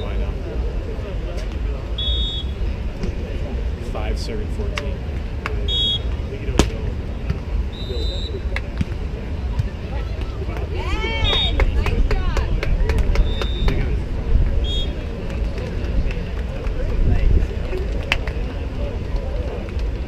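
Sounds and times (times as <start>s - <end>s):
outdoor event chatter: 0.0s - 20.0s.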